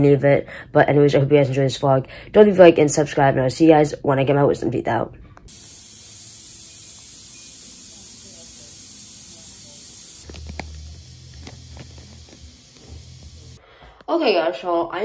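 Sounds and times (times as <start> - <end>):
high-pitched hiss: 5.5 - 13.6.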